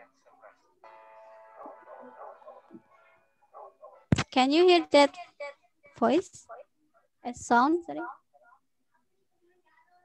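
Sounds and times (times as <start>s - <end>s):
music with held notes: 0.8s - 4.1s.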